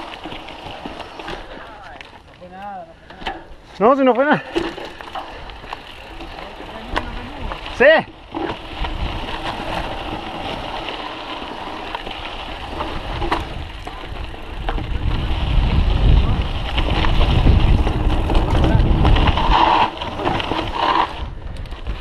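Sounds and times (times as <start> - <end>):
bike knocks and rattles: 0.0 - 2.2, 4.4 - 22.0
bike tyre and wind rush: 0.0 - 22.0.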